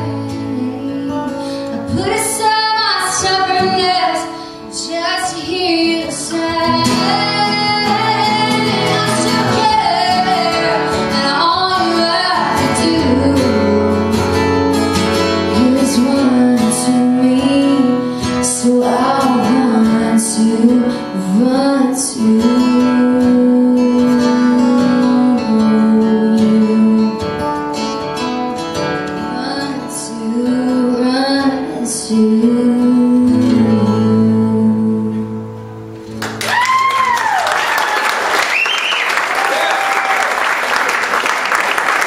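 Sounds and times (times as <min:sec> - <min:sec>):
woman singing: 0:00.0 - 0:14.4, 0:15.3 - 0:27.8, 0:29.1 - 0:35.6
acoustic guitars: 0:00.0 - 0:42.0.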